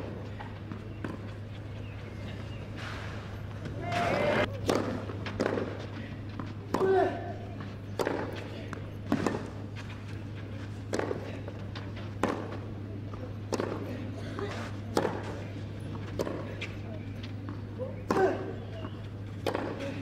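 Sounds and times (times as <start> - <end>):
steady low hum: 0.0 - 20.0
tennis racket hitting ball: 19.4 - 19.8.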